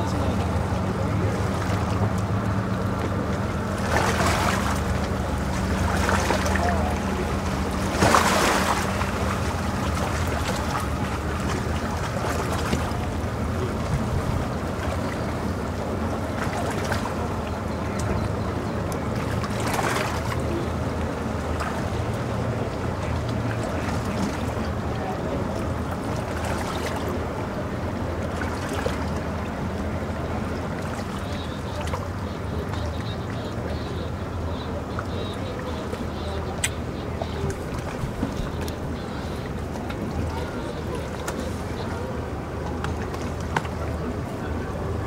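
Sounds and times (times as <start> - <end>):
outboard motor idling: 0.0 - 45.0.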